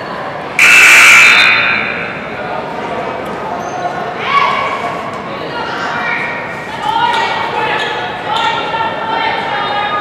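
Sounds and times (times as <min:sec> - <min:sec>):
crowd chatter murmur: 0:00.0 - 0:10.0
loud buzzer blast: 0:00.6 - 0:02.4.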